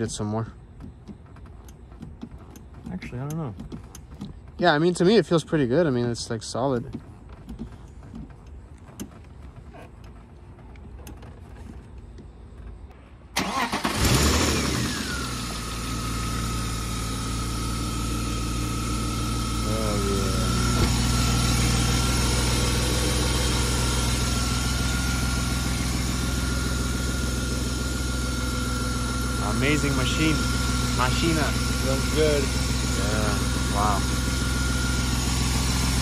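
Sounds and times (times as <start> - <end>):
car engine starting and idling: 0.0 - 36.0.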